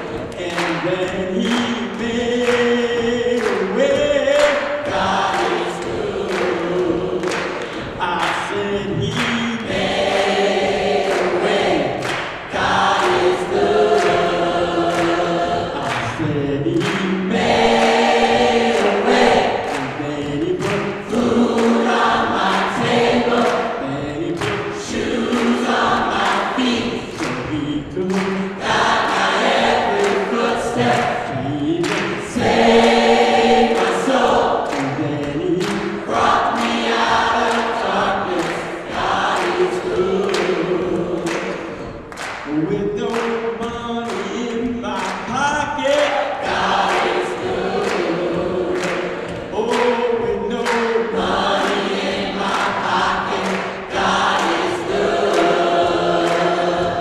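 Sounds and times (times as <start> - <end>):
gospel choir singing in harmony: 0.0 - 57.0
steady beat: 0.0 - 57.0.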